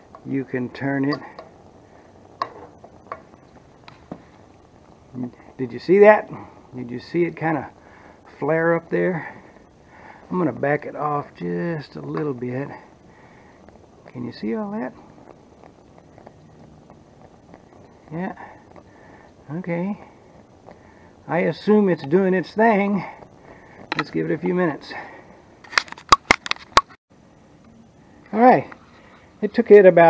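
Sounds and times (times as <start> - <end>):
propane heater hissing: 0.0 - 25.9, 27.1 - 30.0
faint ticks: 12.1 - 21.4.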